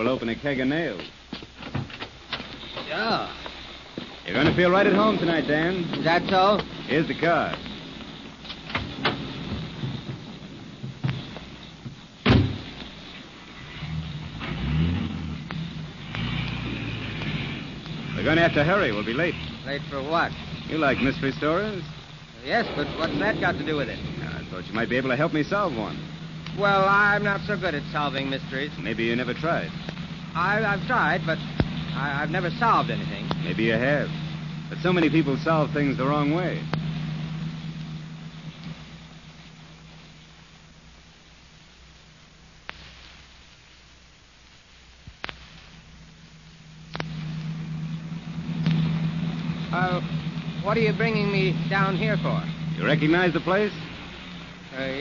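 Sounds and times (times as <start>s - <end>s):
car engine starting and running: 0.0s - 41.0s, 45.8s - 55.0s
hiss: 0.8s - 40.3s, 42.6s - 43.8s
car door slamming shut: 12.2s - 12.8s
clicks: 46.9s - 47.6s.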